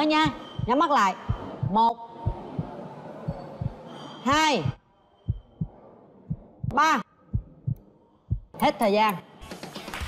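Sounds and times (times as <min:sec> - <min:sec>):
heartbeat thumps: 0:00.0 - 0:08.6.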